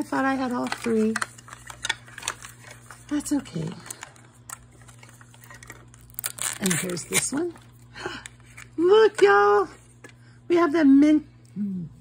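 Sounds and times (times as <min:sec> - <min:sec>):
woman's voice: 0:00.0 - 0:01.3, 0:03.1 - 0:04.0, 0:06.6 - 0:07.6, 0:08.8 - 0:09.8, 0:10.5 - 0:12.0.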